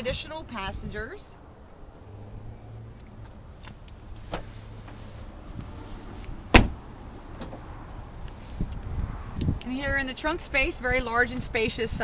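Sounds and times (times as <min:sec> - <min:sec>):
car door slamming: 0:06.5 - 0:07.6.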